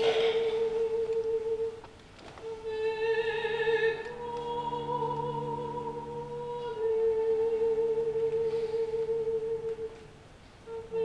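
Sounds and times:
soprano and cello high note: 0:02.5 - 0:11.0.

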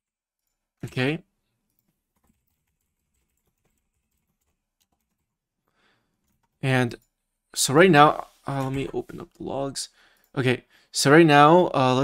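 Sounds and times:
faint keyboard typing: 0:00.4 - 0:07.2.

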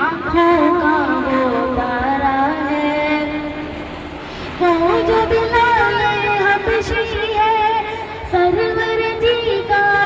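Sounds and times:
boy singing: 0:00.0 - 0:03.4, 0:04.6 - 0:10.0.

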